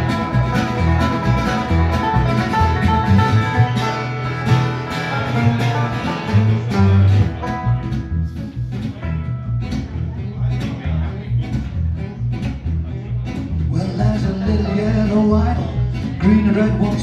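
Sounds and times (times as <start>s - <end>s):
acoustic guitar: 0.0s - 17.0s
banjo picking: 0.0s - 17.0s
plucked double bass: 0.0s - 17.0s.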